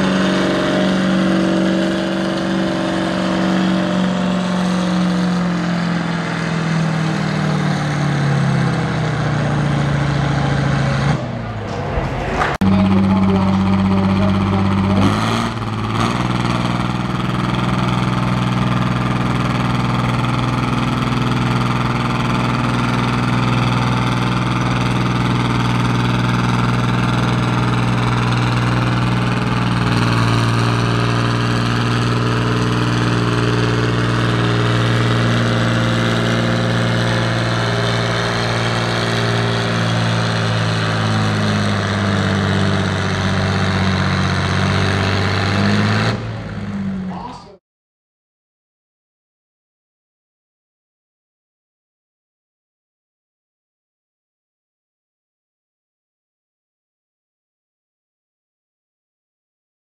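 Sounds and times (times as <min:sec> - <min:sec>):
tractor engine under load: 0:00.0 - 0:47.6
high whine: 0:12.4 - 0:17.3.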